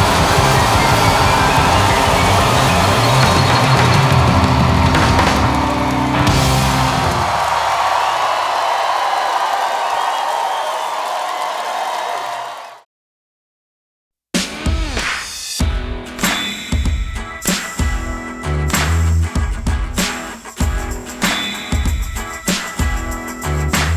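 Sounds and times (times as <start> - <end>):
bass guitar: 0.0 - 7.4, 17.8 - 21.1, 23.3 - 23.9
electric guitars: 0.0 - 7.6
drums: 0.0 - 8.8, 14.4 - 23.9.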